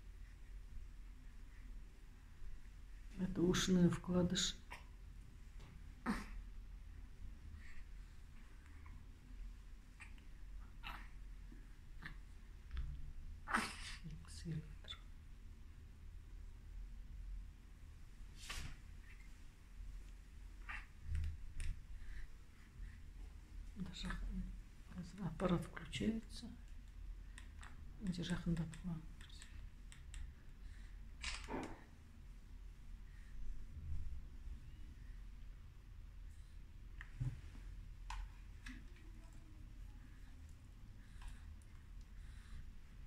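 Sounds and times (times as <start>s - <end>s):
newborn baby whimpering: 10.8s - 11.2s
faint irregular clicks: 26.6s - 30.5s.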